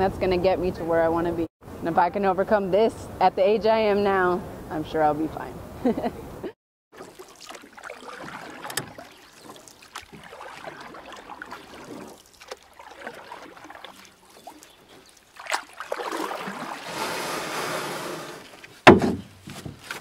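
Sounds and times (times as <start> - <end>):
water splashing and rushing: 6.9 - 18.8.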